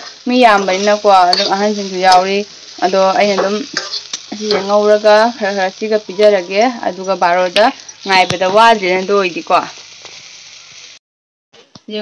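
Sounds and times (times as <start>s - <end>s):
beans sizzling in a wok: 0.0s - 11.0s
woman speaking: 4.3s - 9.7s.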